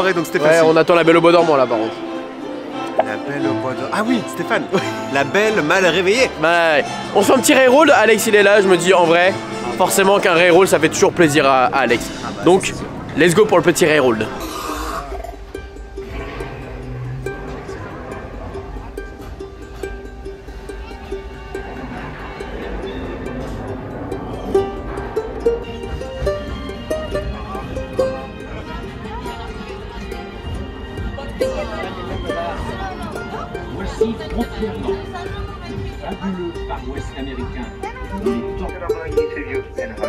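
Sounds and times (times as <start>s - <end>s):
music playing: 0.0s - 40.0s.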